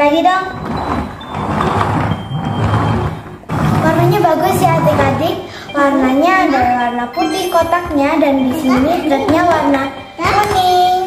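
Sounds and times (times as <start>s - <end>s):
toy truck wheels rolling on wood: 0.5s - 5.5s.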